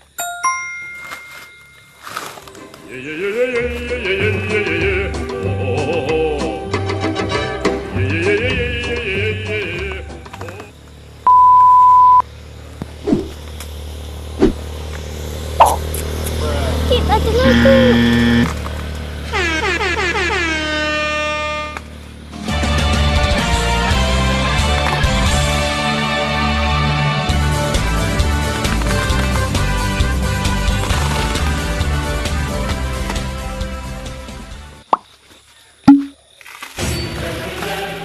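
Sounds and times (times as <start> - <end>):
background music: 2.4 - 10.3, 22.4 - 34.8
short pop sound effects: 15.6 - 15.8, 35.9 - 36.2
short horn blast: 17.4 - 18.5, 19.3 - 21.9.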